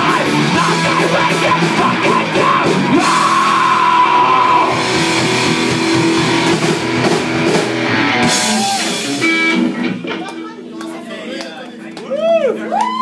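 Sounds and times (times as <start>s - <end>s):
rock band playing: 0.0s - 12.7s.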